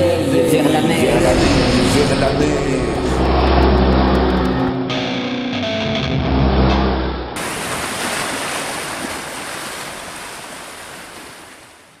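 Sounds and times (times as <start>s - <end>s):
trailer music: 0.2s - 7.4s
sea surf rushing: 0.8s - 5.1s, 7.4s - 11.6s.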